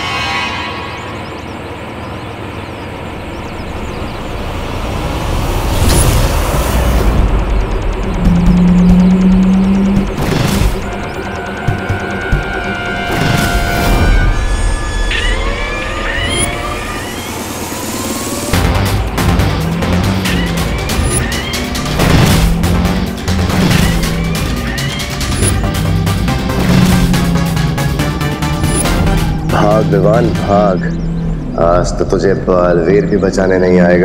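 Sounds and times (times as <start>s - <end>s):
dramatic background score: 0.0s - 34.0s
sweeping rising tones: 0.0s - 34.0s.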